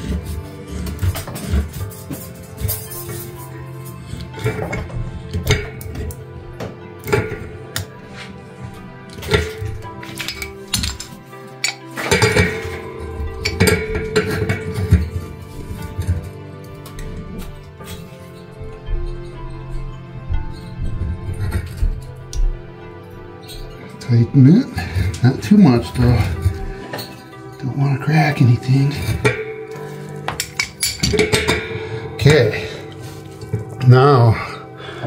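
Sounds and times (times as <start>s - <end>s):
background music: 0.0s - 35.0s
metallic clinks of pipe fitting: 9.1s - 19.9s.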